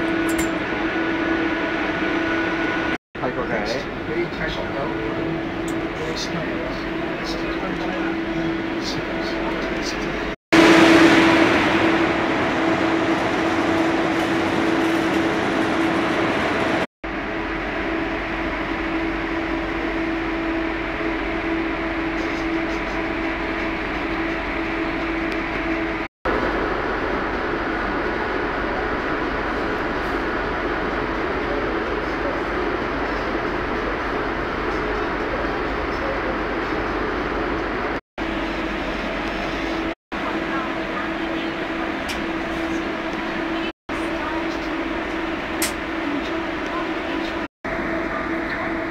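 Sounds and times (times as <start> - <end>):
constant hum: 0.0 - 48.9
train running inside carriage: 0.0 - 48.9.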